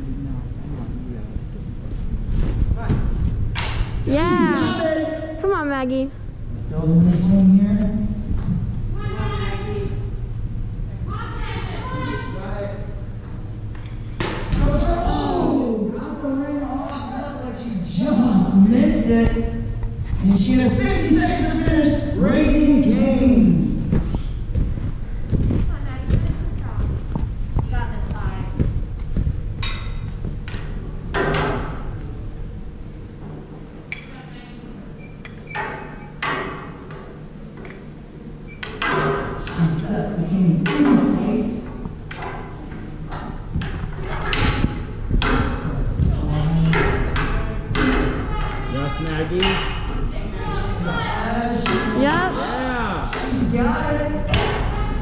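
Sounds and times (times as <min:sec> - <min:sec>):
indistinct voices echoing: 0:03.6 - 0:28.6, 0:38.8 - 0:55.0.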